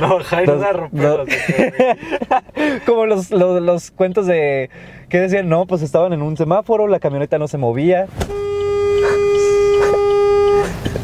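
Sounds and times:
car horn blast: 8.2s - 11.0s.

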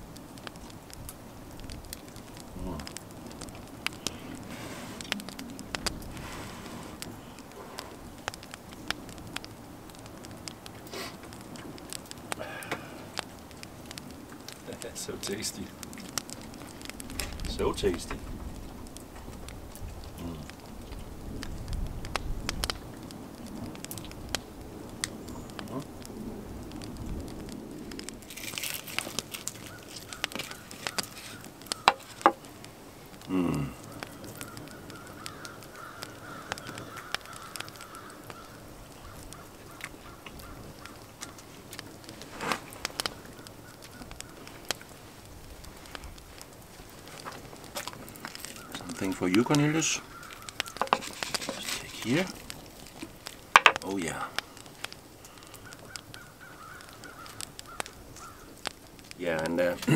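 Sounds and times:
wood fire crackling: 0.0s - 59.9s
fingers pulling apart chicken: 28.3s - 32.2s.

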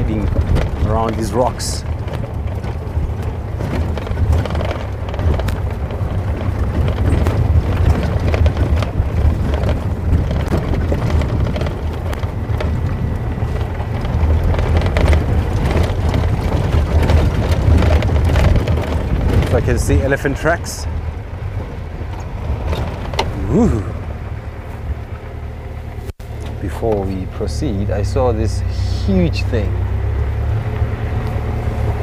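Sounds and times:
wind buffeting microphone: 0.0s - 26.0s
vehicle engine and road rumble: 0.0s - 32.0s.

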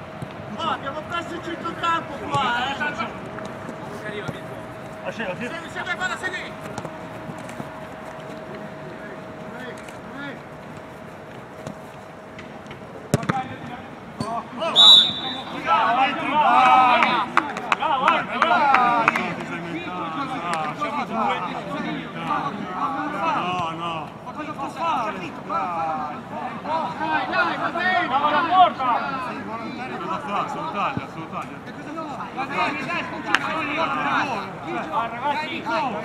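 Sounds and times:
football kicked with a thud: 13.1s - 13.4s
players shouting: 14.5s - 24.0s
referee's whistle: 14.7s - 15.7s.

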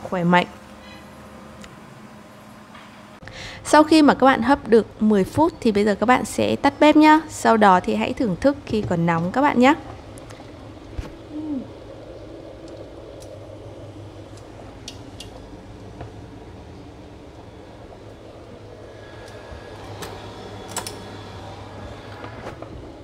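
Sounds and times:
water simmering in a pot: 6.0s - 23.0s.

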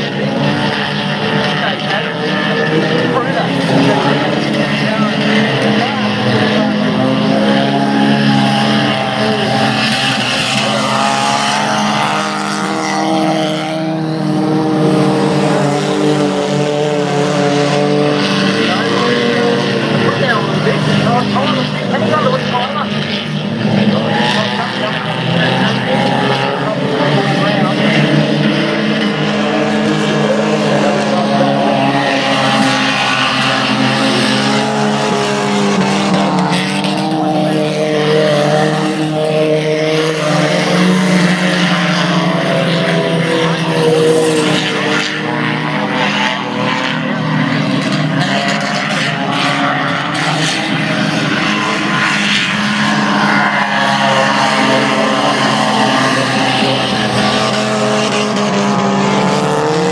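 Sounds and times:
race car engines at speed: 0.0s - 59.9s.

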